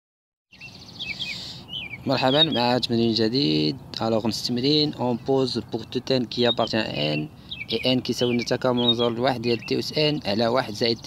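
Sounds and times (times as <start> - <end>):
birds chirping: 0.5 - 11.0.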